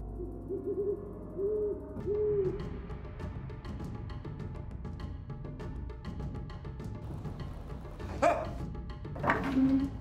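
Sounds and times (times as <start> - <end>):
owl hooting: 0.0 - 2.8.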